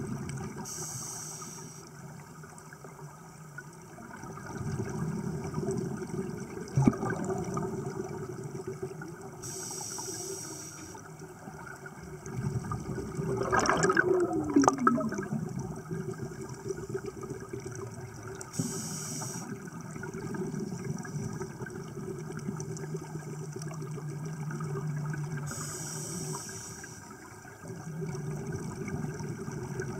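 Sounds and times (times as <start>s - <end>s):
underwater bubbles gurgling: 0.0s - 29.9s
short hissing bursts: 0.7s - 1.9s, 9.4s - 11.0s, 18.5s - 19.5s, 25.5s - 27.0s.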